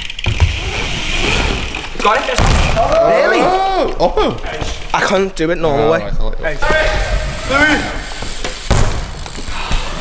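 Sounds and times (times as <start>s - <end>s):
bike tyres rolling on ramp: 0.0s - 4.9s, 7.0s - 10.0s.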